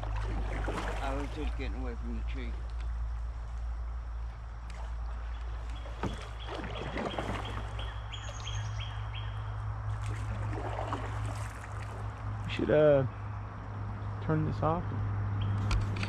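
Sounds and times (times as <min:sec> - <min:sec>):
paddle swishing in water: 0:00.0 - 0:01.8, 0:04.6 - 0:08.8, 0:09.9 - 0:12.3
bird song: 0:04.6 - 0:10.4, 0:12.4 - 0:15.8.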